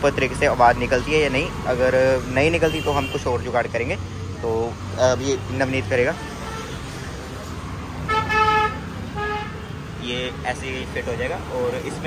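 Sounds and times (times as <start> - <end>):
low rumble of street noise: 0.0 - 12.0
vehicle horn honking: 8.1 - 9.8.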